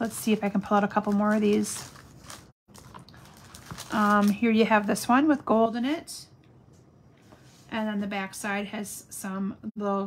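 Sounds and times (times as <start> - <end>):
paper rustling out of plastic sleeve: 0.0 - 5.1.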